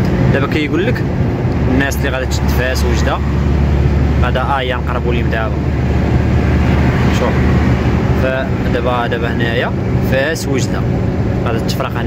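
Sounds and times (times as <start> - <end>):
road noise: 0.0 - 12.0
truck diesel engine humming: 0.0 - 12.0.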